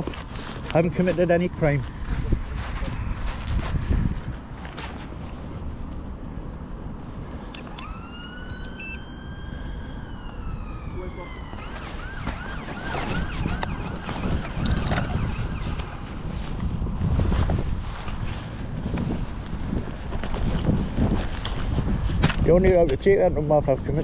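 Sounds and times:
wind buffeting microphone: 0.0 - 24.0
emergency siren wailing and yelping: 7.6 - 16.3.

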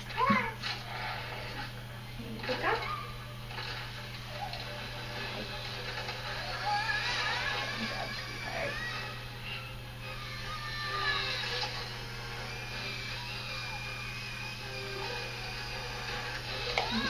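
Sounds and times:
television music: 0.0 - 17.0
television voices: 0.0 - 17.0
dental handpiece whining: 6.5 - 17.0.

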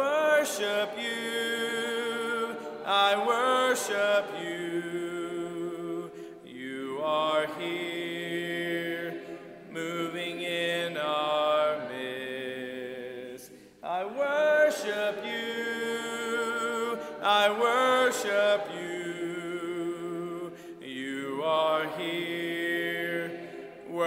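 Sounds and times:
congregation singing a hymn: 0.0 - 24.0.

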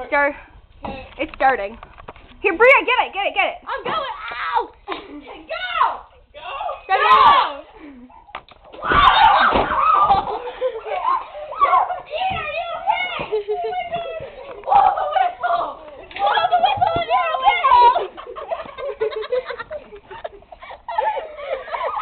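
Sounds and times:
people shouting and screaming: 5.5 - 7.7, 8.7 - 18.2
people laughing: 9.8 - 12.2, 13.1 - 14.6, 16.3 - 22.0.

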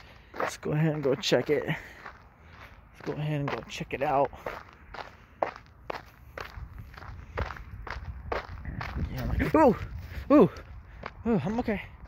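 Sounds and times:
footsteps on grass: 0.0 - 11.7.

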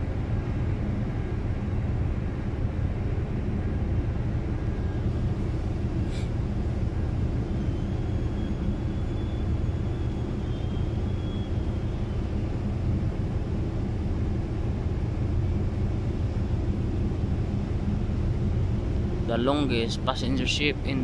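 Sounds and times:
ship engine rumble: 0.0 - 21.0
faint high whine: 4.5 - 13.5.

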